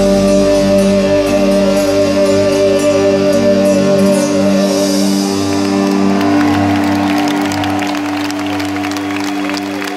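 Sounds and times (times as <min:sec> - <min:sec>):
crowd clapping and cheering: 0:05.1 - 0:09.9.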